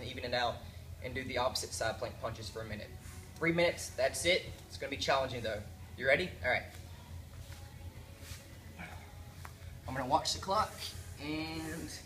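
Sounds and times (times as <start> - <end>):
low room hum: 0.0 - 12.0
rustles on exercise mat: 2.8 - 4.0, 7.3 - 12.0.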